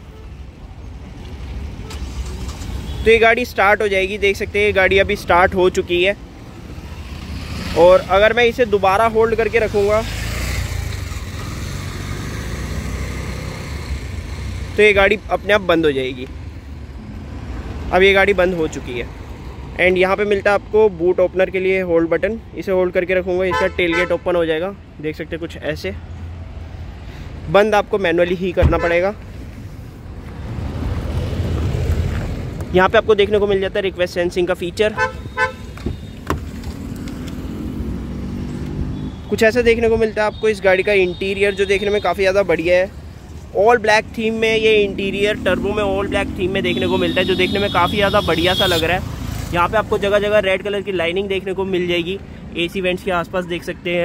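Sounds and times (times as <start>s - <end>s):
street traffic rumble: 0.0s - 54.0s.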